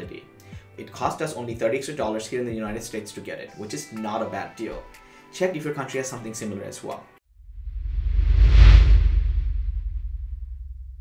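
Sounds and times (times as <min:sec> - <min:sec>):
deep rumble: 0:07.4 - 0:11.0
whoosh sound effect: 0:07.7 - 0:10.3.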